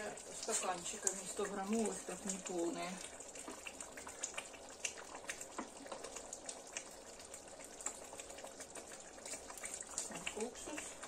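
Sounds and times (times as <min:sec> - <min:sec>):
thick sauce boiling in a pot: 0:00.0 - 0:11.0.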